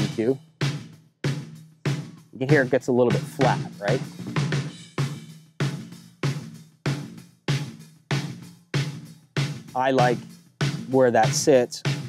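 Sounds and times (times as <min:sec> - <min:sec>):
snare drum hits: 0:02.5 - 0:04.4.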